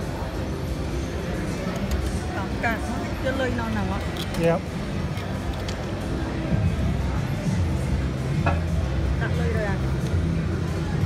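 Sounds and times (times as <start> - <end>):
casino hum and din: 0.0 - 11.0.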